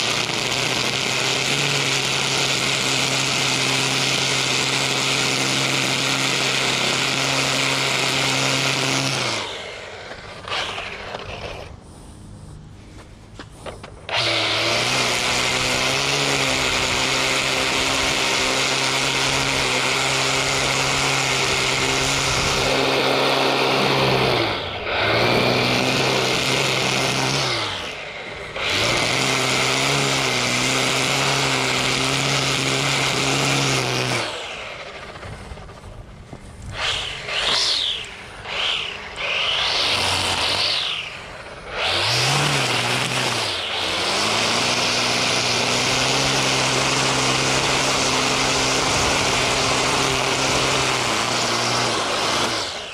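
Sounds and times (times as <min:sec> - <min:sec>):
string trimmer motor whine: 0:00.0 - 0:52.9
trimmer line cutting grass: 0:00.0 - 0:52.9.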